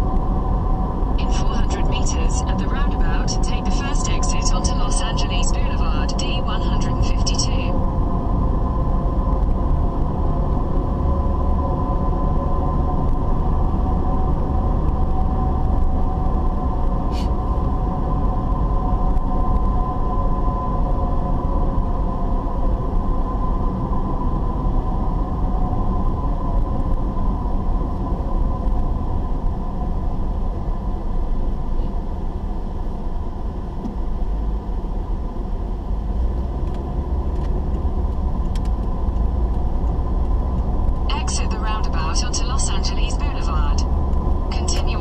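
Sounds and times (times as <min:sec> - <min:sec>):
car engine and road rumble: 0:00.0 - 0:45.0
person speaking: 0:41.1 - 0:43.8, 0:44.5 - 0:45.0.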